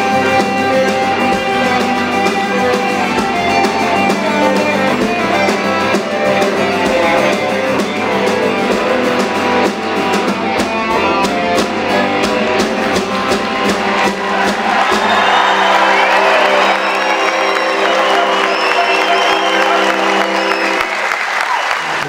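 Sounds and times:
djembe drumming: 0:00.0 - 0:20.5
electric guitar: 0:00.0 - 0:21.1
audience applauding: 0:12.7 - 0:22.0
audience whistling: 0:12.8 - 0:22.0.

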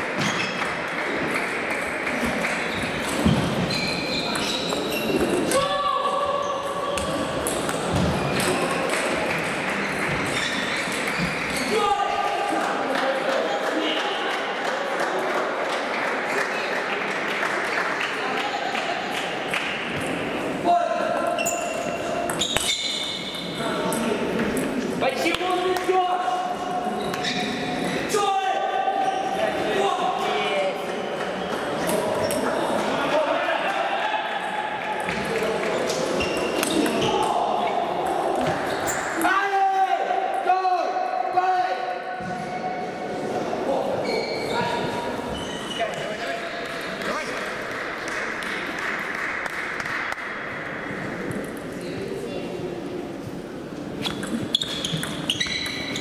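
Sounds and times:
balls bouncing on tables: 0:00.1 - 0:05.6, 0:07.0 - 0:11.7, 0:34.8 - 0:39.3, 0:45.9 - 0:51.8, 0:54.0 - 0:56.0
table tennis balls hitting rackets: 0:35.0 - 0:37.3, 0:54.0 - 0:56.0.

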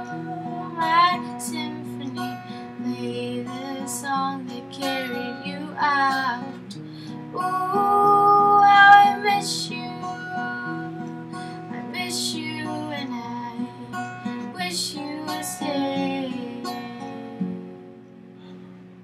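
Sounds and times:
woman singing: 0:00.0 - 0:17.6
acoustic guitar: 0:00.0 - 0:19.0.

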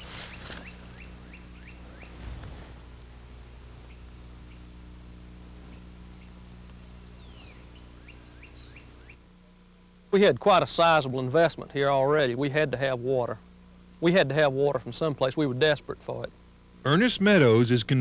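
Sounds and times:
songbird singing: 0:00.0 - 0:09.3
low electrical hum: 0:00.0 - 0:18.0.

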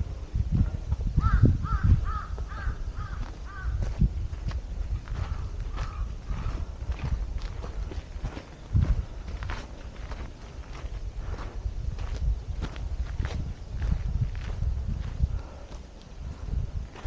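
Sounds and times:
footsteps on dirt trail: 0:00.4 - 0:17.0
bird harsh calls: 0:01.2 - 0:03.8, 0:05.3 - 0:06.8.

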